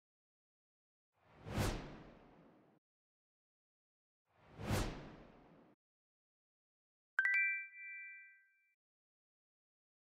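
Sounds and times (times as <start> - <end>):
three-note chime: 7.2 - 8.6.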